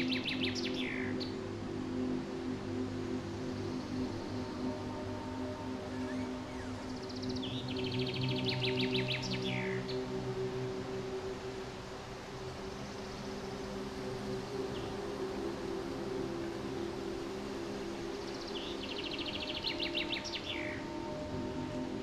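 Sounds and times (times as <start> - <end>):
ambient music chords: 0.0 - 22.0.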